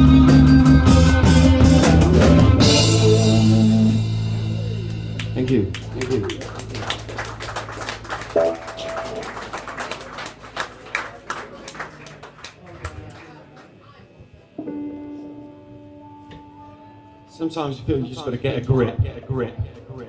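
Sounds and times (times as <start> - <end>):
rock band chord: 0.0 - 11.1
audience clapping: 4.9 - 13.8
held guitar note: 7.2 - 10.4.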